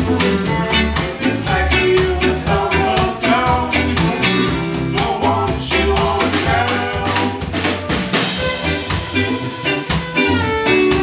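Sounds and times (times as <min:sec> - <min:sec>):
live reggae band playing: 0:00.0 - 0:11.0.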